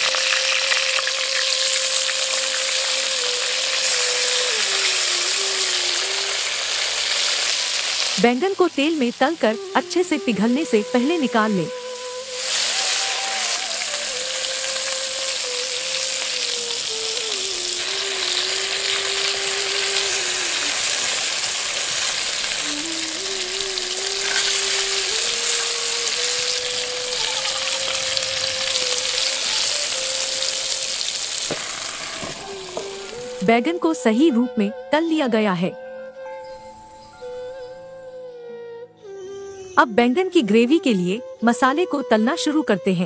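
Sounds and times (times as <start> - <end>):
vegetables sizzling in hot oil: 0.0 - 33.5.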